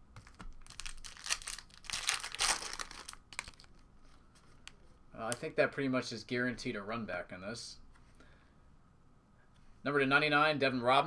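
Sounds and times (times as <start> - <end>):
foil pack crinkling and tearing: 0.2 - 3.8
cards clicking and rustling: 0.2 - 4.8.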